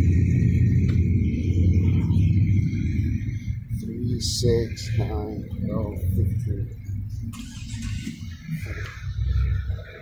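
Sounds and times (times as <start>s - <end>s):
road rumble: 0.0s - 10.0s.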